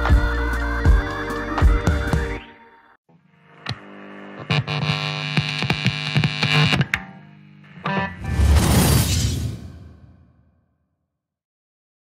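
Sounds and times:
distorted synthesizer hum: 0:03.1 - 0:08.5
glitchy clicks: 0:03.4 - 0:08.6
sharp hit: 0:08.1 - 0:10.4.

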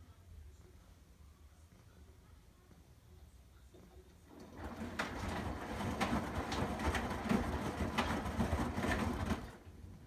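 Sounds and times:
washing machine motor rumble: 0:04.2 - 0:10.0.

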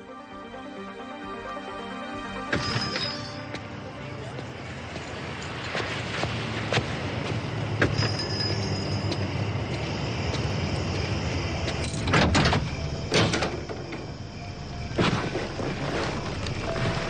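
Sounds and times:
low hum: 0:00.0 - 0:05.6.

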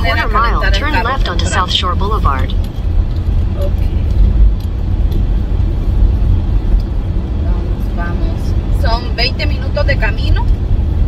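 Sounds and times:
car engine and tyres rumbling: 0:00.0 - 0:11.0.

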